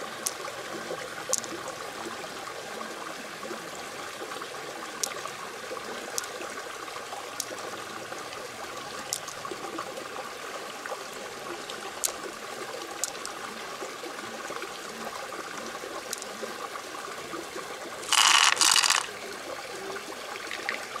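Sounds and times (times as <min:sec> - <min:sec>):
wet trickle: 0:00.0 - 0:21.0
faint clicks: 0:05.0 - 0:05.2, 0:06.1 - 0:06.4, 0:09.0 - 0:09.4, 0:12.9 - 0:13.4.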